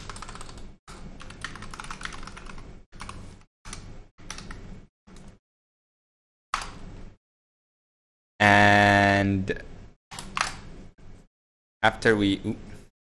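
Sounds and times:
typing on computer keyboard: 0:00.0 - 0:03.2.

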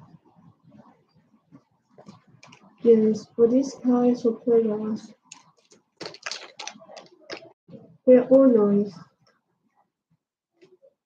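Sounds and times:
beads clicking and rustling: 0:05.3 - 0:07.6.

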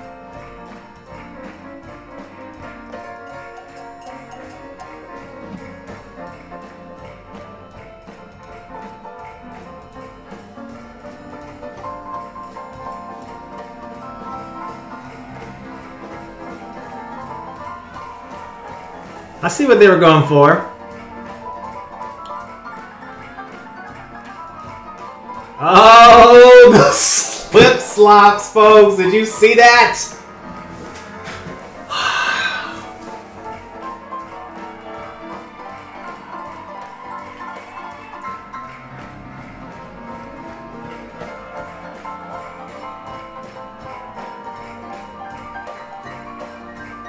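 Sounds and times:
audience cheering: 0:25.6 - 0:30.1, 0:34.7 - 0:39.0.

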